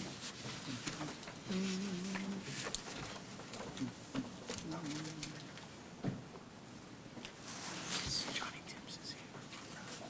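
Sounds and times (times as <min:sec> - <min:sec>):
soft rustles: 0:00.0 - 0:05.7, 0:07.2 - 0:10.0
hushed voices whispering: 0:07.7 - 0:10.0.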